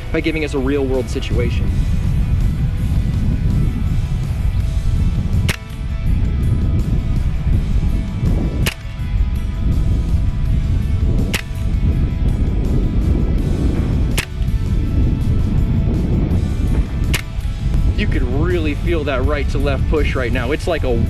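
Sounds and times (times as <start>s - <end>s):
wind rumble on microphone: 0.0s - 21.0s
air rifle shots cracking: 5.3s - 6.2s, 8.5s - 9.2s, 11.2s - 11.8s, 14.1s - 14.8s, 16.8s - 17.6s.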